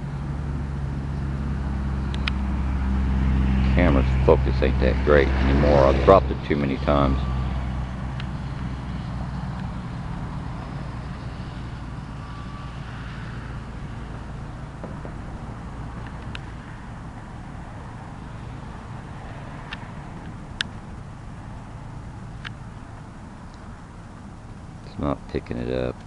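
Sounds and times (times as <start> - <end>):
distant engine rumble: 0.0 - 26.0.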